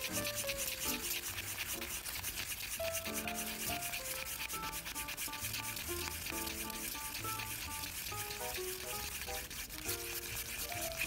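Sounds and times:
background music: 0.0 - 11.0
stir stick scraping paper cup: 0.0 - 11.0.

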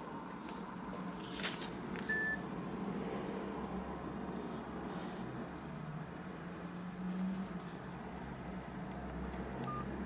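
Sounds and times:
paper receipt rustling: 0.4 - 2.3
mobile phone beep: 2.1 - 2.4, 9.7 - 9.9.

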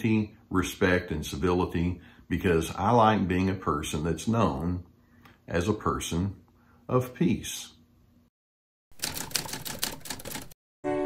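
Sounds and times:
rapid sharp clicks: 9.0 - 10.6.

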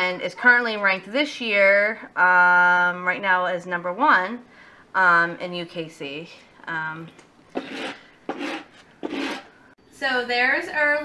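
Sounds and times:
metal comb rasping through fur: 7.6 - 9.5.

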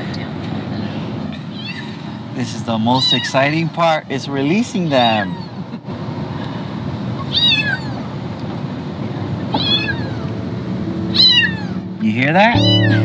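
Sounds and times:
road noise: 0.0 - 13.0
cats meowing: 1.5 - 2.0, 2.9 - 3.6, 4.8 - 5.7, 7.2 - 8.1, 9.5 - 10.4, 11.1 - 11.9, 12.6 - 13.0.

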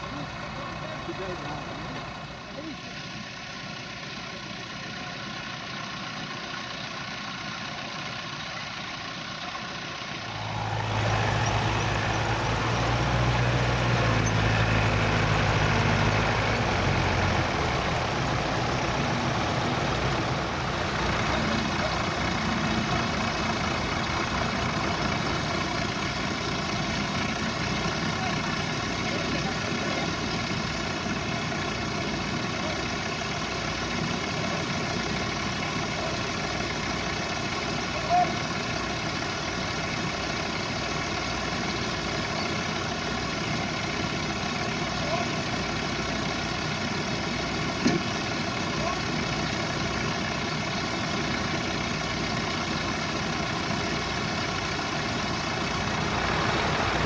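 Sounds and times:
tractor engine idling: 0.0 - 57.0.

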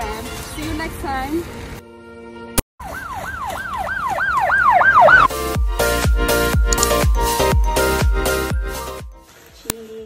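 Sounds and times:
siren-style wail: 2.8 - 5.3
music with heavy beat: 5.3 - 9.2.

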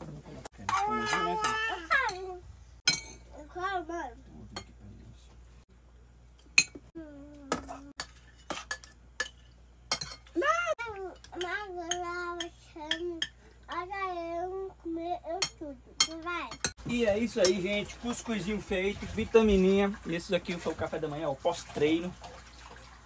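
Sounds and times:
spoon clinking on plates: 2.9 - 3.2, 6.6 - 6.8, 8.0 - 10.3.

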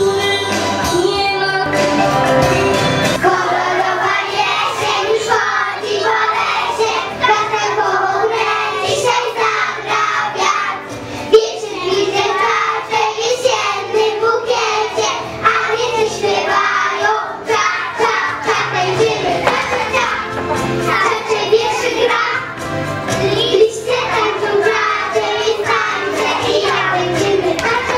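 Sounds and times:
backing music: 0.0 - 27.9
sharp knock: 19.4 - 20.0.

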